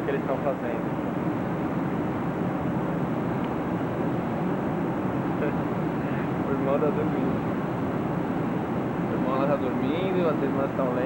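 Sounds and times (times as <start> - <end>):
jet airliner cabin noise: 0.0 - 11.0.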